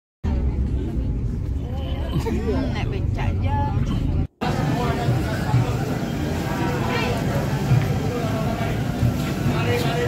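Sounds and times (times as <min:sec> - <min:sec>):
crowd voices: 0:00.3 - 0:10.0.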